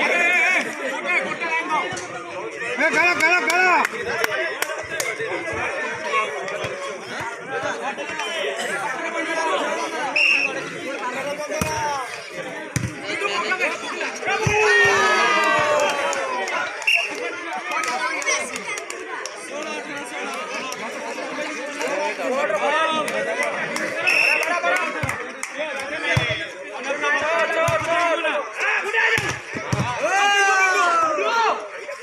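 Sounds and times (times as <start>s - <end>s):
crowd chattering and calling out: 0.0s - 32.0s
excited shouting: 14.3s - 18.7s, 29.9s - 31.6s.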